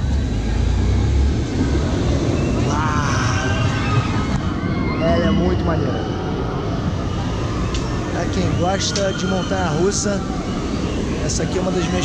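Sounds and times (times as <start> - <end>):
roller coaster rumbling on track: 0.0 - 12.0
voices: 2.3 - 12.0.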